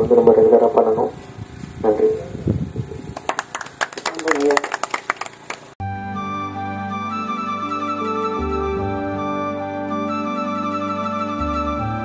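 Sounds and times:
scattered handclaps: 3.1s - 5.8s
music: 5.8s - 12.0s.

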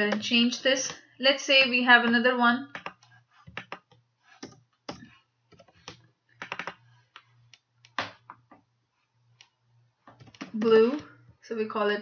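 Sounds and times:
typing on a keyboard: 2.7s - 6.8s.

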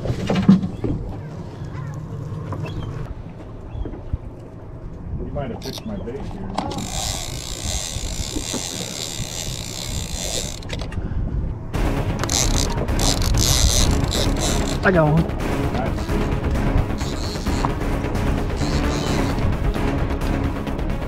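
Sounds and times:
fishing reel drag buzzing: 6.7s - 10.8s, 12.2s - 14.8s, 17.0s - 17.7s, 18.6s - 19.4s.

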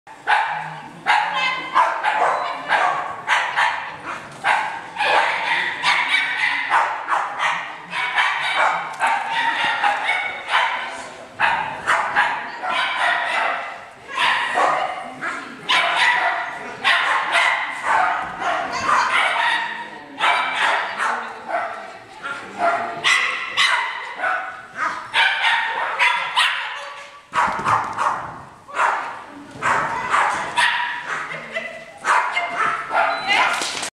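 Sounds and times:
people's voices: 0.2s - 33.9s
dog barking and yipping: 0.3s - 10.8s, 11.4s - 15.0s, 22.6s - 31.4s, 32.0s - 33.6s.

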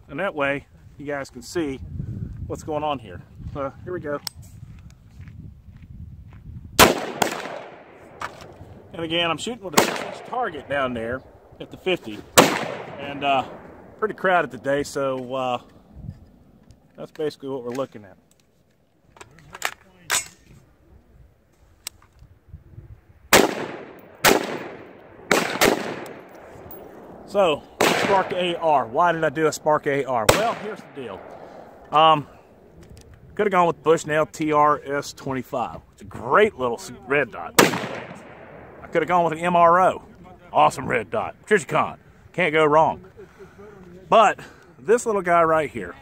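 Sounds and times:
rifle shots with echo: 6.8s - 15.9s, 23.3s - 32.7s, 37.5s - 39.6s.

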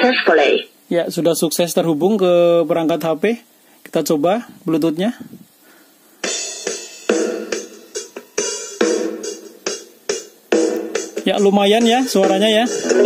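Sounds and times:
music from a small speaker: 6.2s - 13.0s.

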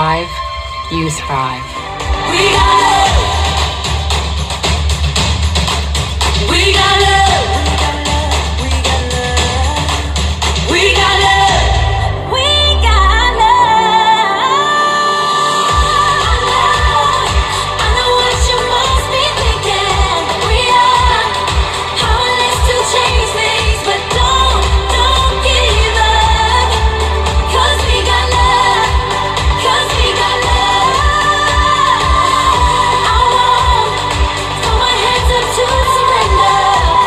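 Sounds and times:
pop song with sung vocals: 0.0s - 37.0s
steady bass beat: 0.9s - 11.9s, 15.7s - 37.0s.

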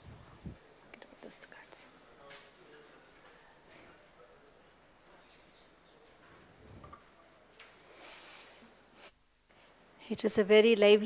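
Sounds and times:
faint whispered speech: 0.6s - 5.2s.

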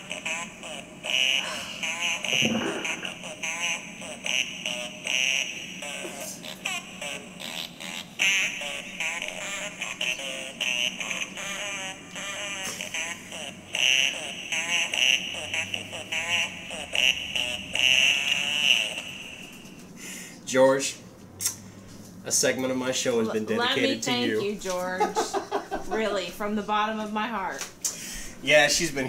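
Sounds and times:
tinny recorded fart sounds: 1.2s - 4.4s.

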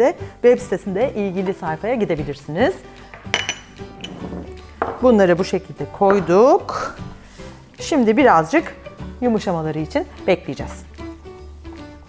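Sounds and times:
background music: 0.0s - 12.0s
ceramic bowl clinking: 3.1s - 5.0s.

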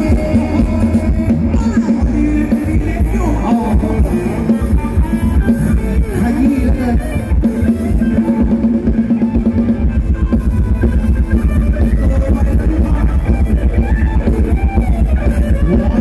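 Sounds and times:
live band dance music: 0.0s - 16.0s.

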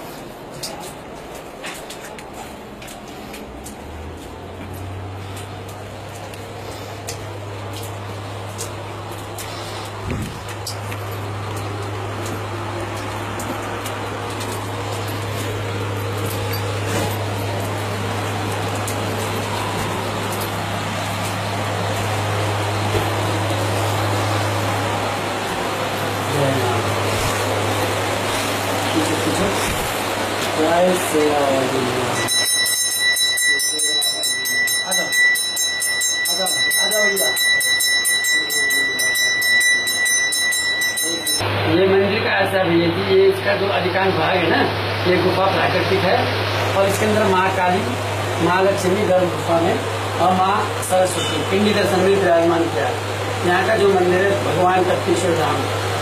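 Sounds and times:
constant wash of noise: 0.0s - 56.0s
steady high ringing tone: 10.6s - 27.0s, 30.8s - 42.6s, 46.8s - 55.8s
bell ringing in fast strokes: 32.2s - 41.4s.

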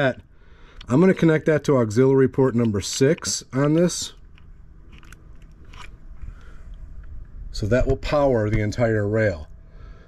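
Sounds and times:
wires clicking and rustling: 2.6s - 7.2s.

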